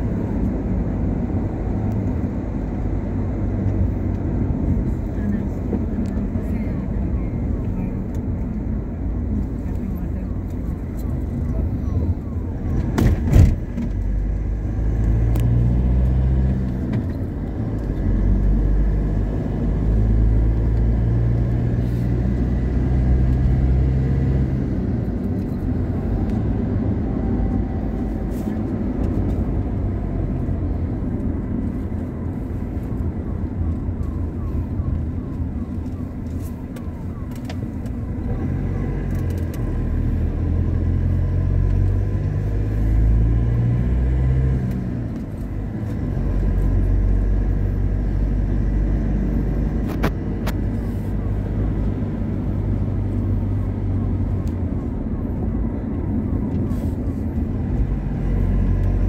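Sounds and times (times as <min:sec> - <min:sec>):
car road noise rumble: 0:00.0 - 0:59.0.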